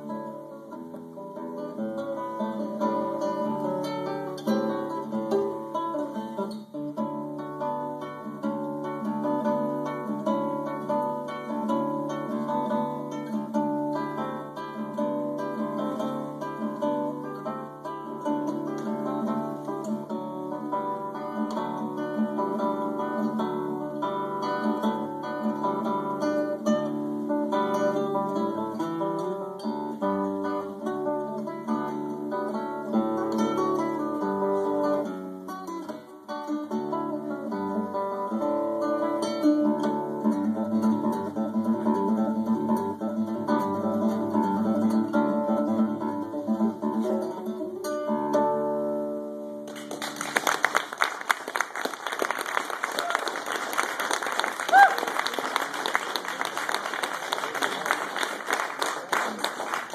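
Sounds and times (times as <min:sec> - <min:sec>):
classical guitar solo: 0:00.0 - 0:59.9
audience applause: 0:49.7 - 0:59.9.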